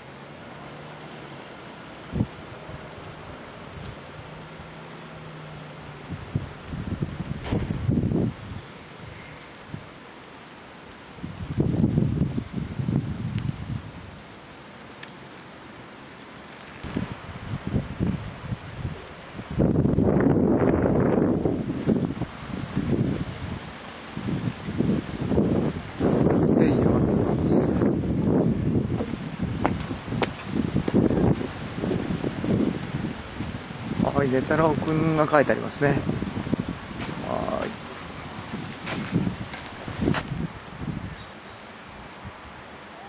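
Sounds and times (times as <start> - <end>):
faint outdoor hiss: 0.0 - 43.0
wind buffeting microphone: 2.0 - 10.0, 10.9 - 14.3, 16.8 - 42.8.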